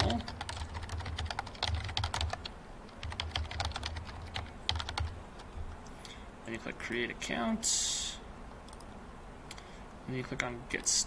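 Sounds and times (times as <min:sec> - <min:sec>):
typing on computer keyboard: 0:00.0 - 0:05.5.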